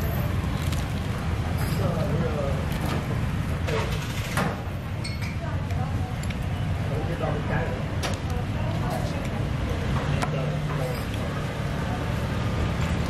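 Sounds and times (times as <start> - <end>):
voices talking in background: 1.6 - 12.9.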